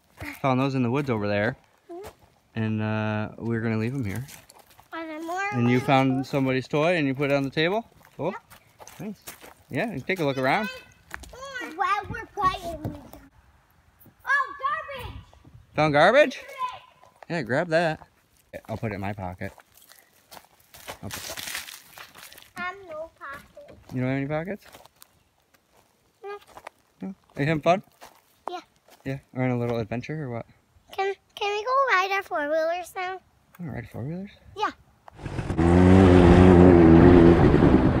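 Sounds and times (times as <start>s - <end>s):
footsteps crunching on wood chips: 0.0s - 2.5s, 3.4s - 12.8s, 18.0s - 29.1s
off-road vehicle engine running: 35.2s - 38.0s.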